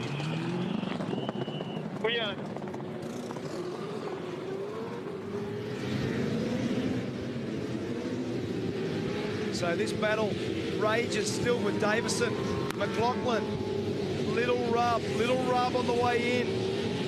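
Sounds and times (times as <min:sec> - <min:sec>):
race car engine revving: 0:00.0 - 0:17.0.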